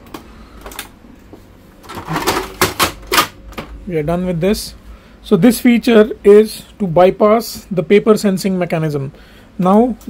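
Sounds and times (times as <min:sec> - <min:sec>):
plastic clattering: 0:01.8 - 0:03.7.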